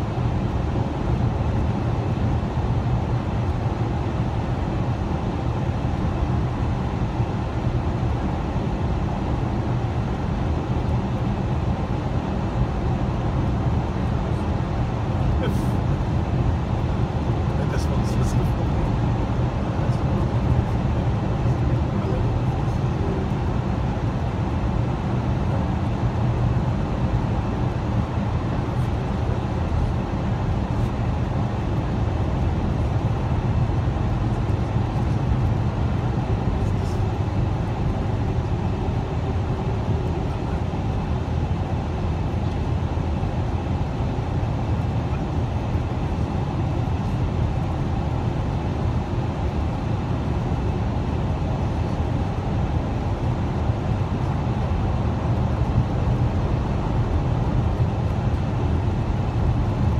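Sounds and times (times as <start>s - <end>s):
car road and engine noise: 0.0s - 59.9s.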